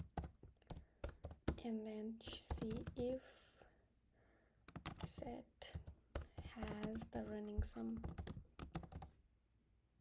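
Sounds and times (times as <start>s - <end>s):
typing on computer keyboard: 0.0s - 1.7s, 2.3s - 3.2s, 4.7s - 9.1s.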